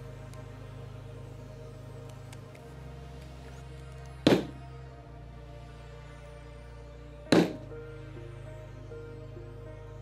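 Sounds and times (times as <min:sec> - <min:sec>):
background music: 0:00.0 - 0:10.0
mallet striking leather stamping tool: 0:07.3 - 0:07.6.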